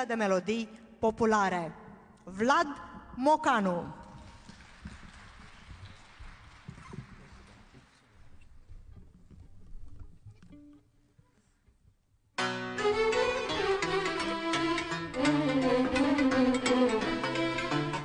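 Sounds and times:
audience applause: 4.2 - 8.1.

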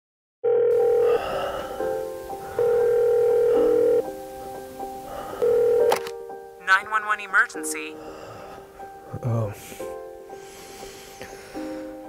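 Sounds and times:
soft telephone tones: 0.5 - 1.3, 2.5 - 4.0, 5.4 - 6.0
quiet music: 0.7 - 12.0
telephone beep: 2.6 - 4.0.

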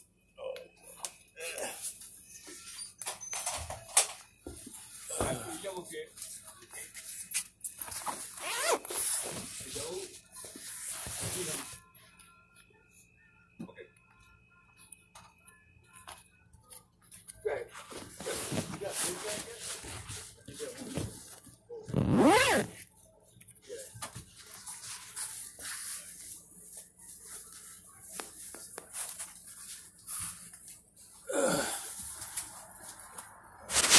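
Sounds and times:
zipper being pulled: 8.4 - 9.4, 21.9 - 22.8
person sighing: 31.3 - 32.0.

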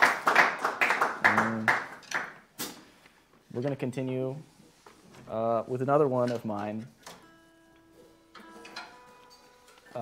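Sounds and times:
person talking: 5.3 - 6.9.

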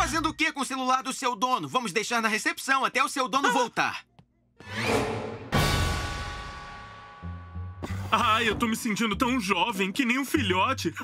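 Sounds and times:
loud drum hit: 5.4 - 7.3.

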